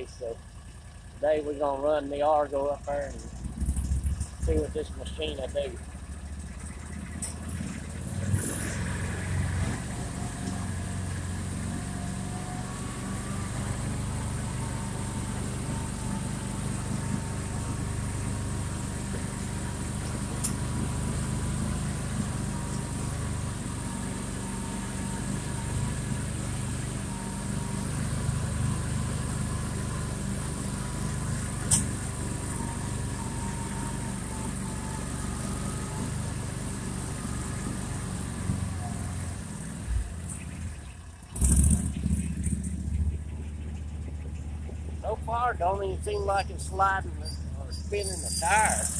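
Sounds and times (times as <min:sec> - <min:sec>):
vehicle engine under load: 0:00.0 - 0:48.9.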